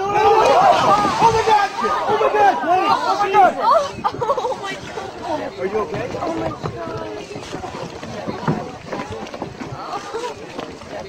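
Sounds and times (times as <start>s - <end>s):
raised voices of onlookers: 0.0s - 11.0s
water splashing in a pool: 0.0s - 11.0s.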